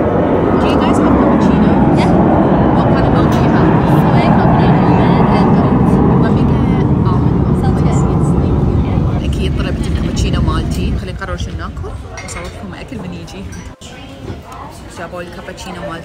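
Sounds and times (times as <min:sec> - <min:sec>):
street traffic rumble: 0:00.0 - 0:16.0
voices: 0:00.0 - 0:16.0.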